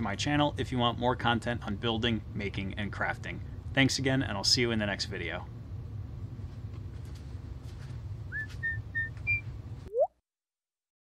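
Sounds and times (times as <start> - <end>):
low room hum: 0.0 - 9.9
whistled notes: 8.3 - 10.1
upward whistled glide: 8.4 - 10.1.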